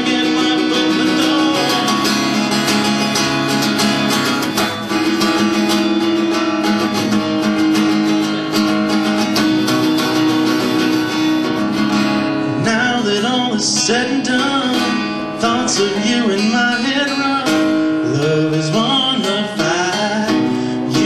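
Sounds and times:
man singing: 0.0 - 3.1, 12.5 - 21.0
acoustic guitar playing: 0.0 - 21.0.

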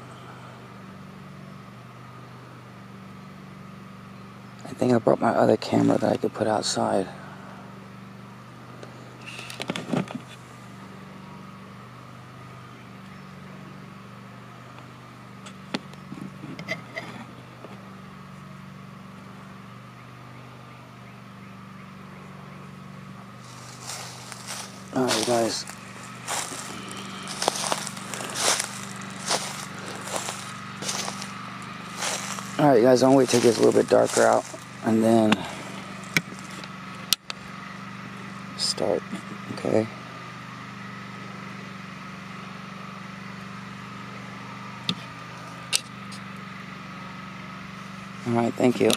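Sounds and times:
steady low hum: 0.0 - 48.9.

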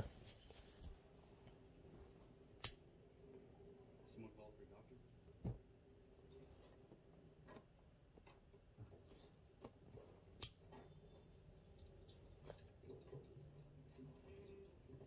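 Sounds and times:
lighter clicking: 2.6 - 2.8.

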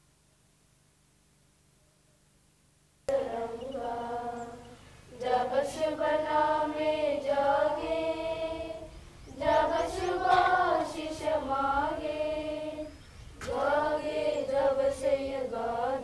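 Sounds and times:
girls singing in unison: 3.1 - 16.0.

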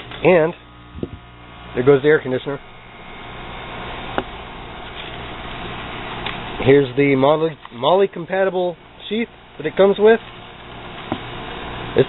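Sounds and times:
air conditioner humming: 0.0 - 12.0.

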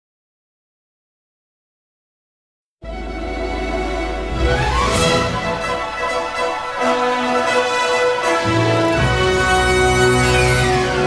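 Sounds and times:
background music with held notes: 2.8 - 11.0.

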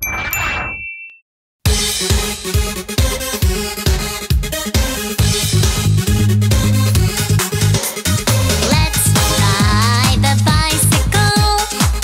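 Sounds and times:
bright chime dings: 0.0 - 1.2
electronic dance music: 2.1 - 12.0.

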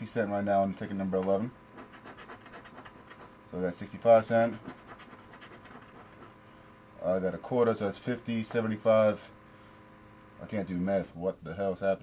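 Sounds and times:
coin scratching lottery ticket: 1.7 - 3.3, 4.1 - 6.4.

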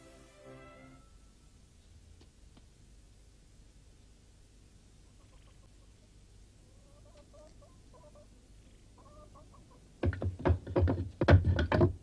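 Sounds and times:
wooden knocks and rattles: 10.0 - 12.0.

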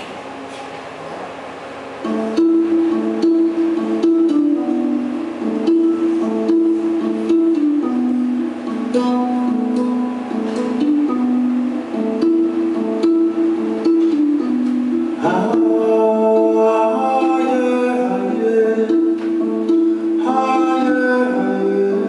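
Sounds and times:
low room noise: 0.0 - 22.0
plucked string instrument music: 2.0 - 22.0.

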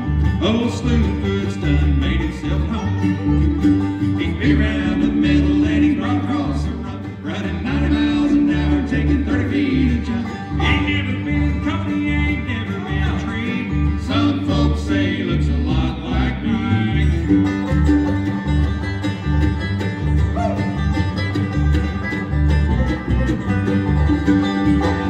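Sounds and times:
bluegrass band playing: 0.0 - 25.0
fiddle sliding notes: 0.0 - 25.0
upright bass thumping: 0.0 - 25.0.

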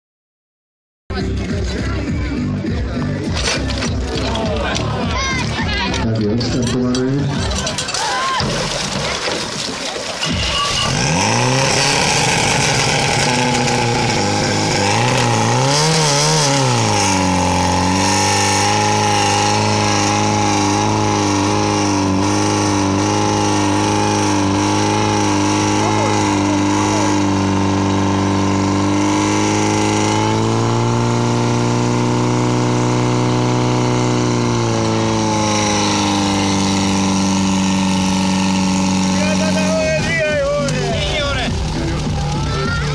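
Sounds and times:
pump engine revving: 1.2 - 42.9.

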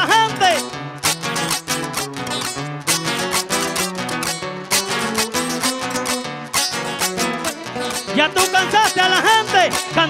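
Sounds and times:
stepping bass line: 0.0 - 10.0
strummed guitar chords: 0.0 - 10.0.

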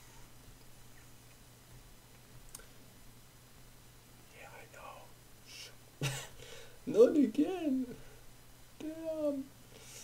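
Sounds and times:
low steady hum: 0.0 - 10.0
man whispering: 4.3 - 5.8, 8.8 - 9.5
breathy hiss: 4.5 - 5.8.

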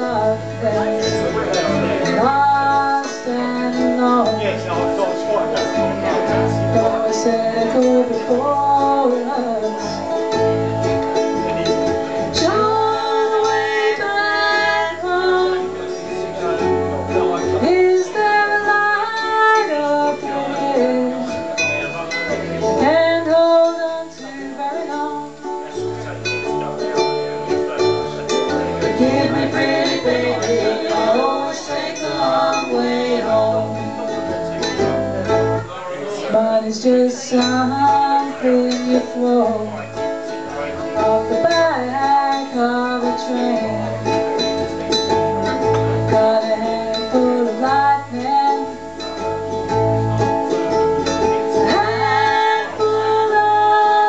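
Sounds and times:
strummed ukuleles: 0.0 - 54.0.

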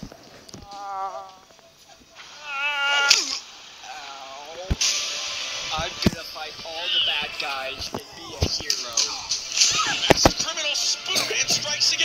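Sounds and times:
cat yowling: 2.3 - 3.4
sharp crash: 4.6 - 6.7.

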